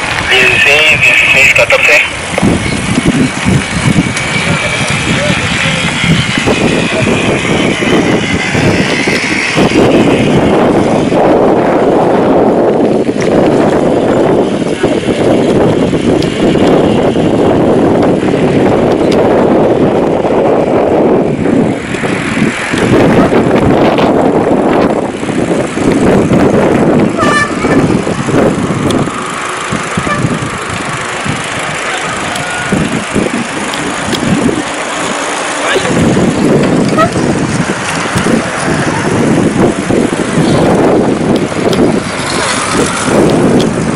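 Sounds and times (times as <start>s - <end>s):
wind buffeting microphone: 0.0s - 43.9s
indistinct voices: 0.2s - 2.4s, 4.0s - 11.2s, 29.0s - 40.7s.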